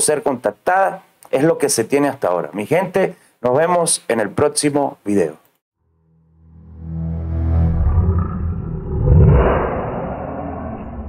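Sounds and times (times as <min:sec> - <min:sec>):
deep rumble: 0:06.3 - 0:11.0
lion roar: 0:07.8 - 0:11.0.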